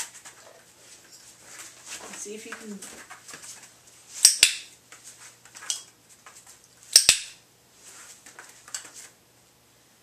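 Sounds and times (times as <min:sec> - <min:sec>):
dog moving on foam mats: 0:00.0 - 0:04.1
sharp click: 0:04.2 - 0:04.7, 0:06.9 - 0:07.4.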